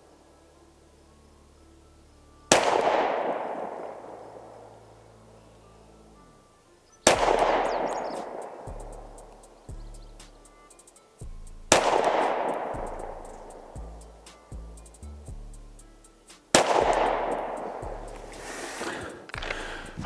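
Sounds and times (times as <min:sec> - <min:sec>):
pistol shots echoing: 0:02.5 - 0:04.9, 0:07.0 - 0:08.7, 0:11.7 - 0:12.8, 0:16.6 - 0:17.8.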